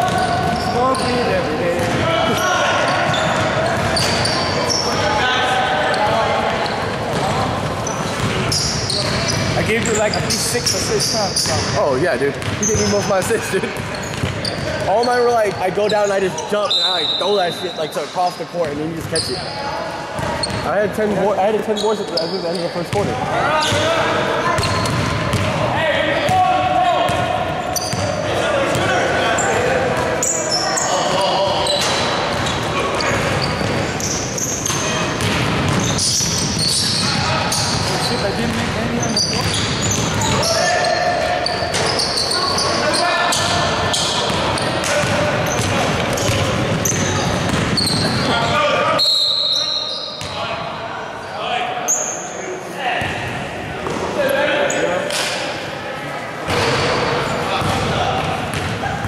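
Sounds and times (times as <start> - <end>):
basketball bouncing on hardwood court: 3.3 - 4.2, 8.1 - 9.8, 12.4 - 12.6, 13.8 - 14.7, 24.6 - 25.6, 35.2 - 36.6, 44.3 - 48.2, 57.6 - 57.9, 58.5 - 58.8.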